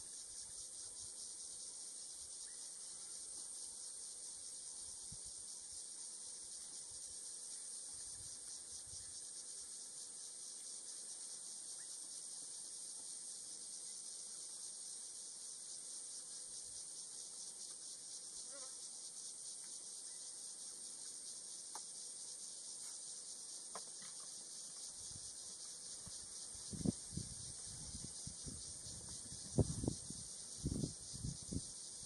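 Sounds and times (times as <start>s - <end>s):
high-pitched insect chorus: 0.0s - 32.0s.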